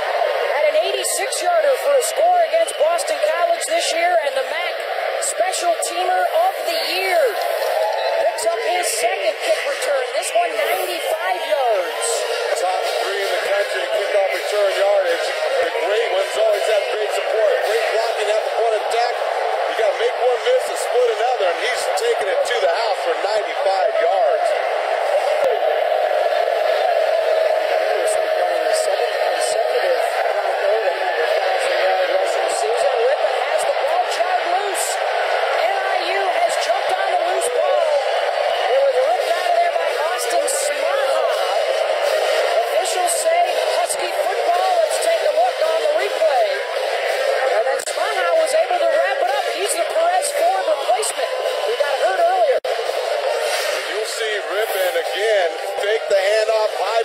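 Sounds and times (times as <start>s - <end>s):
muffled crowd babble: 0.0s - 57.0s.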